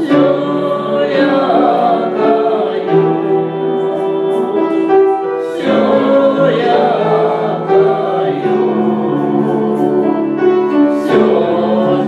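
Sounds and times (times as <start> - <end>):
voices singing a hymn: 0.0 - 12.0.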